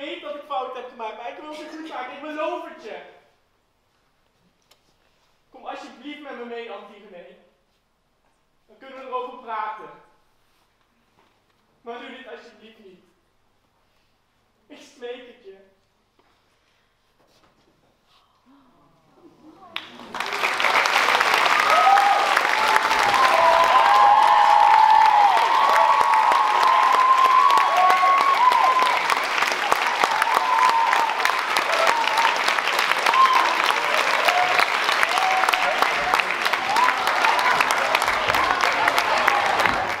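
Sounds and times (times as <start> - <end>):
audience applauding: 19.7 - 40.0
cheers and whoops: 21.2 - 40.0.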